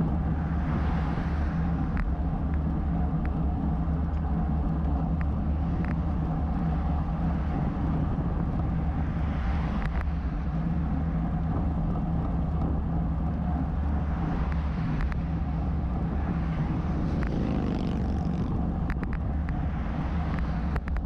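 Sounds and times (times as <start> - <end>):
wind and road rumble: 0.0 - 21.0.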